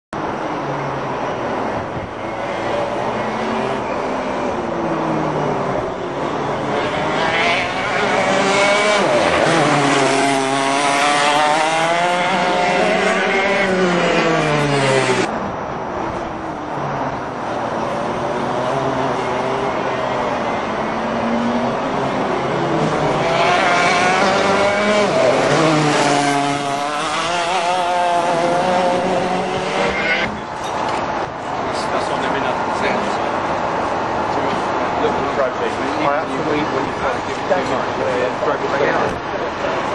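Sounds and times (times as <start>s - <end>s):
kart engines revving: 0.7s - 15.3s, 17.0s - 39.9s.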